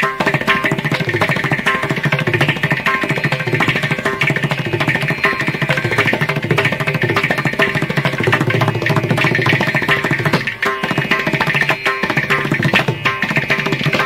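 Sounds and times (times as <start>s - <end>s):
hand drums playing fast strokes: 0.0s - 14.0s
tanpura drone: 0.0s - 14.0s.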